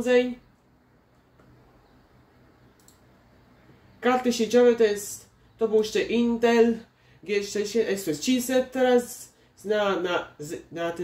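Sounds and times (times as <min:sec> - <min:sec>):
low steady hum: 0:00.0 - 0:11.0
computer mouse click: 0:02.7 - 0:03.1.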